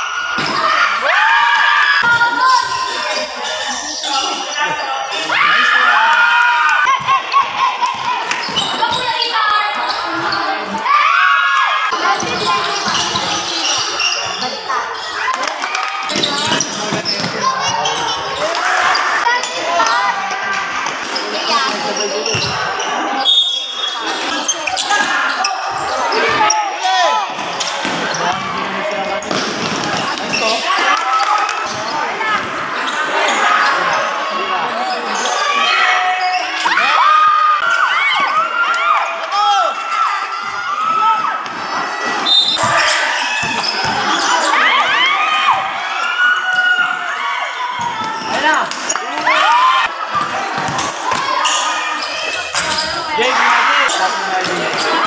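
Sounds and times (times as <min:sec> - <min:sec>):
players and spectators shouting: 0:00.0 - 0:55.0
basketball bouncing on court: 0:22.2 - 0:22.7, 0:50.1 - 0:51.3.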